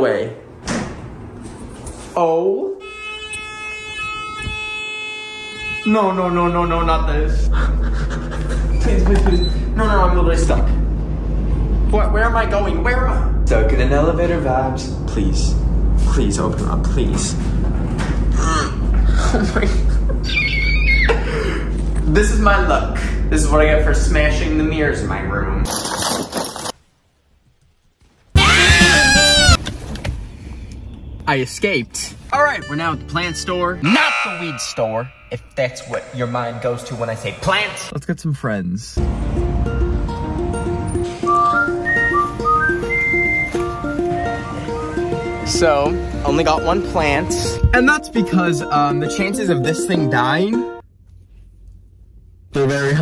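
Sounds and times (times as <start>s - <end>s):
elevator buzzer: 2.8s - 6.8s
scream-like cry: 20.2s - 21.4s, 28.4s - 29.6s, 33.8s - 35.4s.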